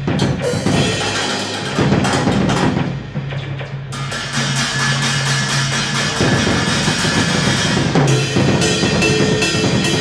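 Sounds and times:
drum and cymbal hits: 0:00.0 - 0:10.0.

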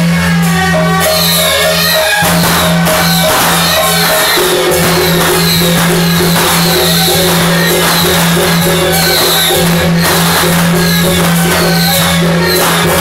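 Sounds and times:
drums and percussion: 0:00.0 - 0:13.0
steady low drone: 0:00.0 - 0:13.0.

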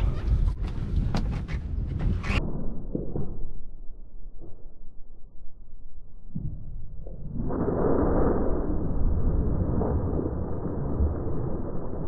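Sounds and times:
wind on microphone: 0:00.0 - 0:02.8
low rumble of wind and water: 0:00.0 - 0:12.0.

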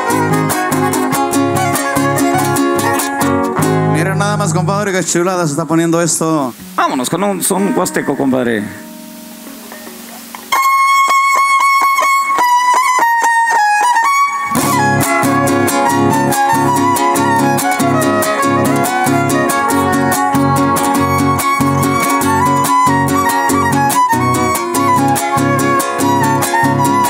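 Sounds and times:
violin melody: 0:00.0 - 0:05.6, 0:06.4 - 0:27.0
rhythmic guitar strumming: 0:00.0 - 0:27.0.

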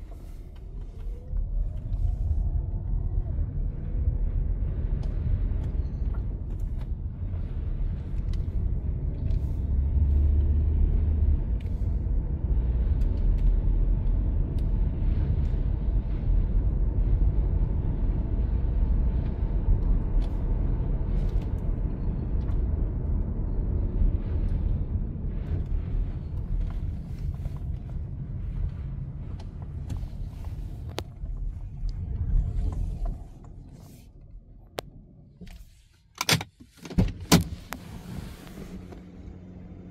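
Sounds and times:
car cabin low rumble: 0:00.0 - 0:39.9.

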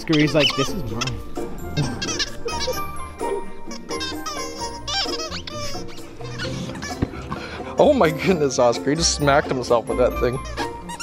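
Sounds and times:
dog toy squeaking: 0:00.0 - 0:07.2, 0:10.2 - 0:11.0.

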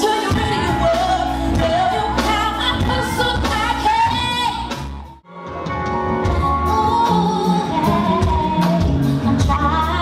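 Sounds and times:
woman singing: 0:00.0 - 0:04.8, 0:06.2 - 0:10.0
live band playing: 0:00.0 - 0:10.0.

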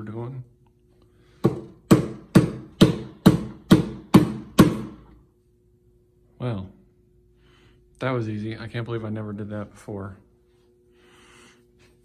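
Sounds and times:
faint steady hum: 0:00.0 - 0:12.0
hand slapping wooden cabinet: 0:01.4 - 0:05.0.

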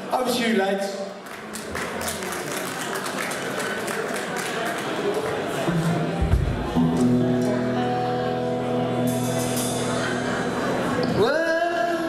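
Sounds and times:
crowd voices: 0:00.0 - 0:12.0
audience applauding: 0:01.2 - 0:07.3.

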